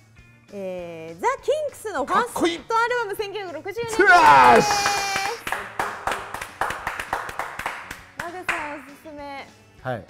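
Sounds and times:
people clapping hands: 3.9s - 9.0s.

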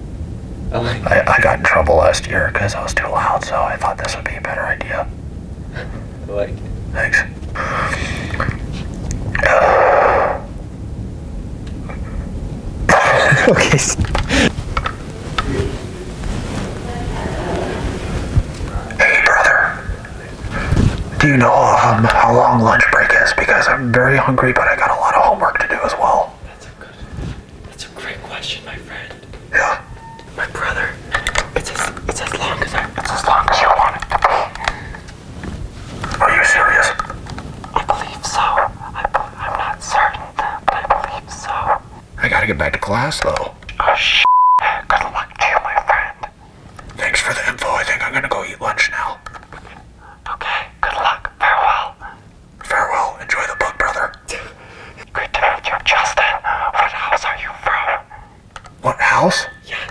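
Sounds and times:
man whispering through megaphone: 0.8s - 5.1s, 6.3s - 8.7s, 9.3s - 10.6s, 12.9s - 14.5s, 18.6s - 35.0s, 36.0s - 37.1s, 37.7s - 46.4s, 47.0s - 59.9s
whisper through megaphone: 9.4s - 10.5s, 18.6s - 31.0s, 31.6s - 34.7s.

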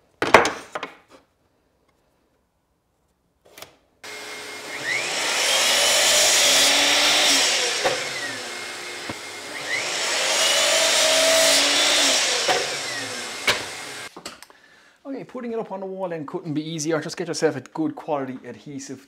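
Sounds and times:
mitre saw cutting board: 4.0s - 14.1s.

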